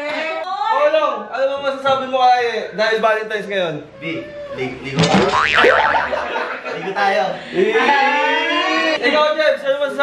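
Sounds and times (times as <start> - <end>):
cartoon spring boing: 5.0 - 6.5.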